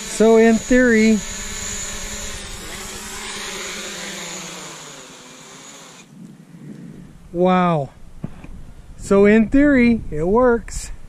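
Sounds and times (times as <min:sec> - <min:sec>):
drone propellers whirring: 0:00.0 - 0:07.0.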